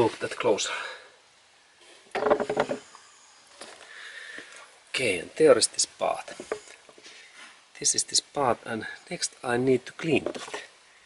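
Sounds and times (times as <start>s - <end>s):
clatter of knocks and rattles: 2.2s - 2.8s.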